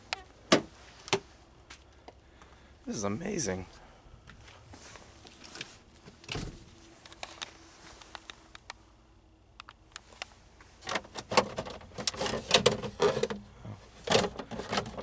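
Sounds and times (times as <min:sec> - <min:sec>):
glove box clicks and rattles: 0:09.6 - 0:15.0.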